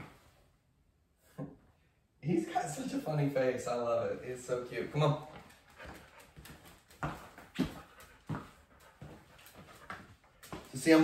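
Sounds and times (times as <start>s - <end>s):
soft steps on tile floor: 4.3s - 11.0s.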